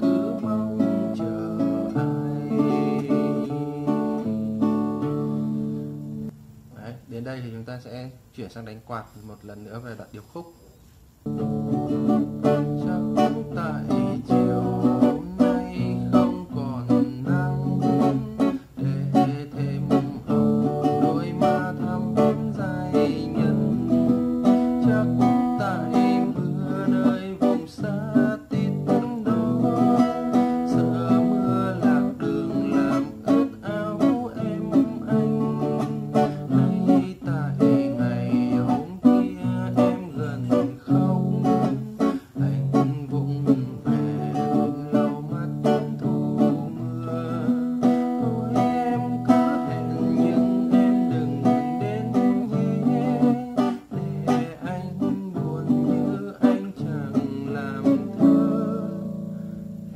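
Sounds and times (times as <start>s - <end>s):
acoustic guitar strumming: 0.0s - 7.3s, 9.2s - 59.9s.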